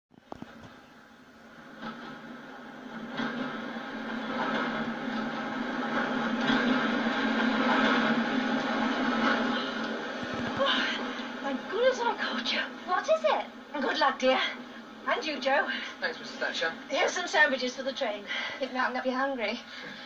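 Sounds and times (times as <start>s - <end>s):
train rumble and wheel noise: 0.2s - 20.0s.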